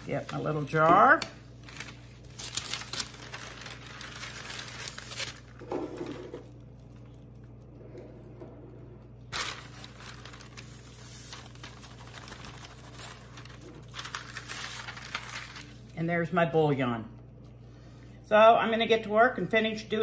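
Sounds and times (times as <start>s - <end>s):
parchment paper crinkling: 0.0s - 8.0s, 9.0s - 16.0s.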